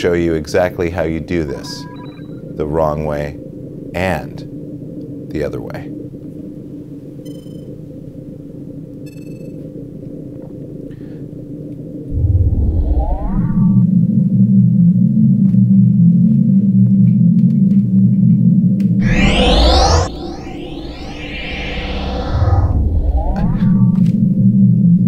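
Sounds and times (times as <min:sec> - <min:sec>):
short electronic beeps: 0:01.8 - 0:02.4
rising sweep: 0:12.1 - 0:13.8, 0:19.0 - 0:25.0
deep engine drone: 0:19.0 - 0:25.0
low cockpit hum: 0:19.0 - 0:25.0.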